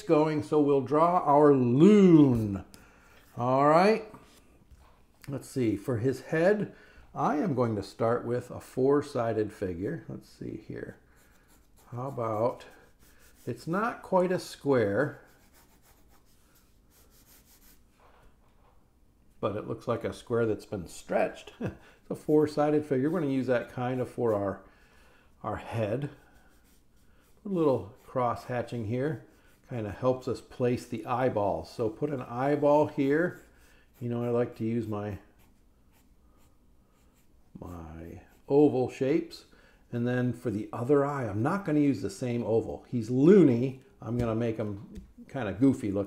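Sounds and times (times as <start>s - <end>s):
pencil scratching on paper: 10.9s - 17.9s, 22.1s - 24.6s, 25.7s - 31.0s, 31.6s - 38.5s.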